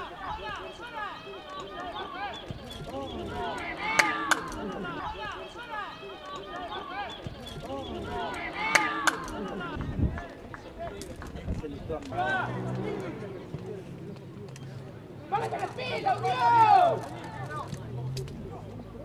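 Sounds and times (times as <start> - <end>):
people shouting: 0.0 - 10.2, 12.1 - 12.8, 15.3 - 17.7.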